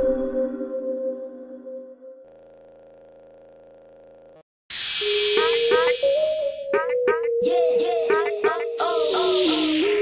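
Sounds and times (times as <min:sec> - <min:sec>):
background music: 0:05.0 - 0:10.0
hissing swoosh with held tone: 0:08.8 - 0:10.0.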